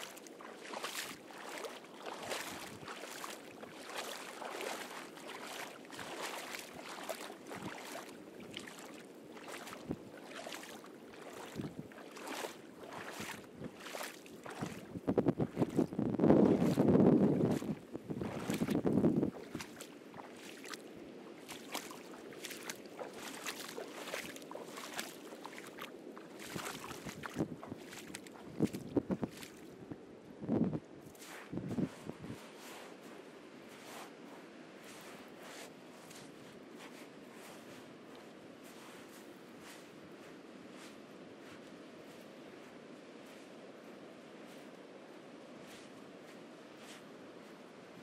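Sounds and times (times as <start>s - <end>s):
footsteps crunching on beach: 0.0s - 30.0s, 31.0s - 48.0s.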